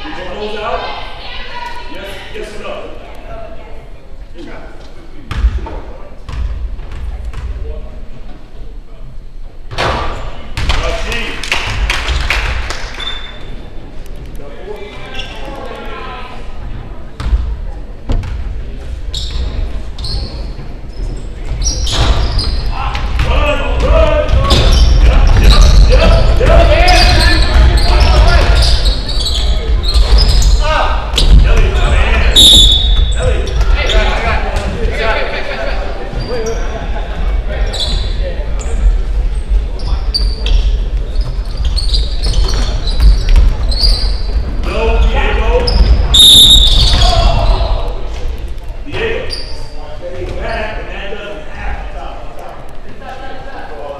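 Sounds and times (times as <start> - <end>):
spectators voices and shouts: 22.7 - 37.7.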